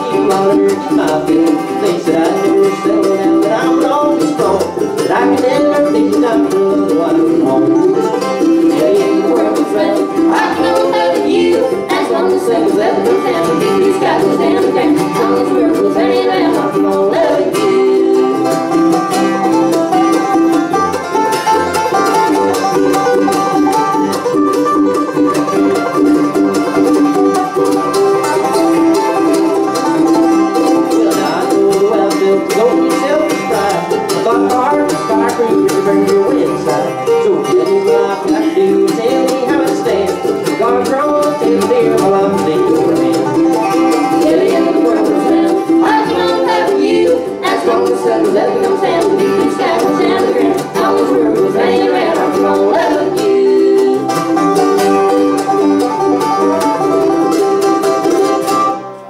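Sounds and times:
banjo: 0:00.0 - 0:59.0
bluegrass band playing: 0:00.0 - 0:59.0.

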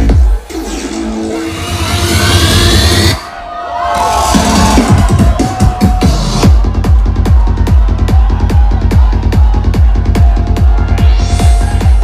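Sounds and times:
psytrance music: 0:00.0 - 0:12.0
bass pulse: 0:04.4 - 0:12.0
kick drum: 0:04.7 - 0:12.0.

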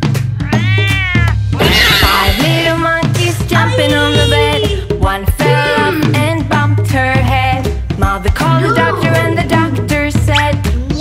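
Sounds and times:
children's music with low beat: 0:00.0 - 0:11.0
cat meowing: 0:00.3 - 0:01.4.

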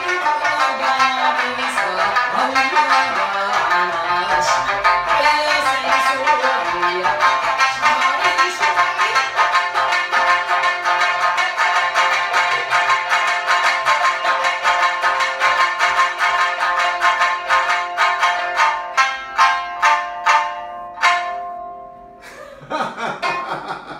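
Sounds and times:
plucked lutes: 0:00.0 - 0:23.9.

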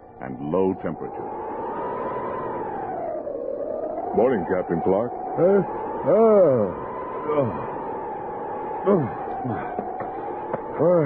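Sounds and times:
howling wind with whistling tone: 0:00.0 - 0:11.0.

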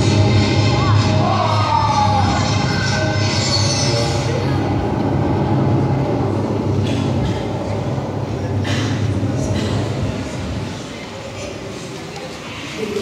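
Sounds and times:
loud rumbling with low hum: 0:00.0 - 0:11.8.

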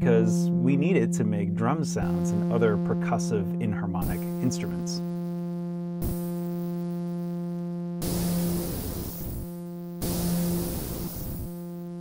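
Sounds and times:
buzzy synthesizer tone: 0:00.0 - 0:12.0
noisy hiss bursts: 0:06.0 - 0:06.5, 0:08.0 - 0:11.6.

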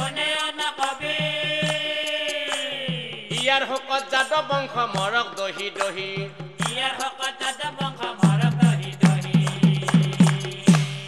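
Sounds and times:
drum strokes: 0:00.0 - 0:11.0
person chanting devotional song: 0:00.0 - 0:11.0.

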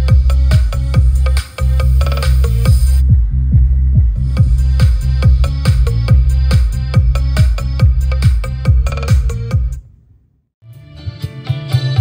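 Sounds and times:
deep sweeping kick drum: 0:00.0 - 0:09.8
electronic dance music: 0:00.0 - 0:09.8.

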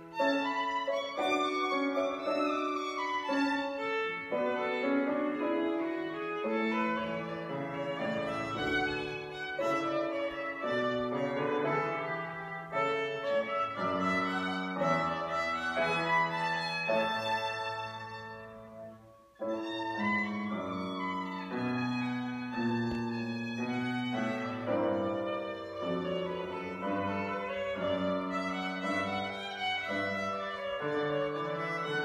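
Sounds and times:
piano accompaniment: 0:00.0 - 0:32.0
violin slow melody: 0:00.0 - 0:32.0.

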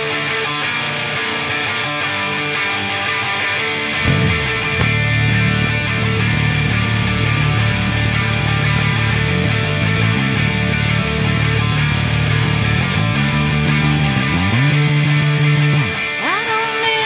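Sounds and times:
distorted electric guitar: 0:00.0 - 0:17.0
electric bass line: 0:02.6 - 0:16.0
person singing: 0:16.2 - 0:17.0.

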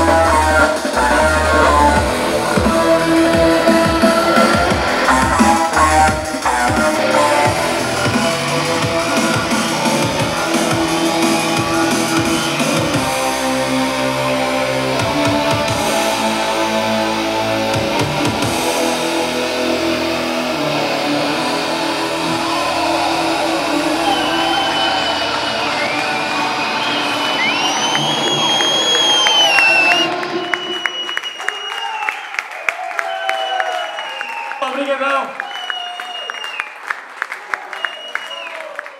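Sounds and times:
live electronic band music: 0:00.0 - 0:31.0
audience applause: 0:21.3 - 0:38.9.

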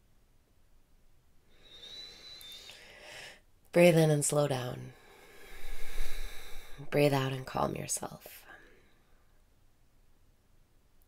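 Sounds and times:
faint high whistle: 0:01.5 - 0:03.1
woman's long in-breath: 0:01.5 - 0:03.4, 0:05.0 - 0:06.9.

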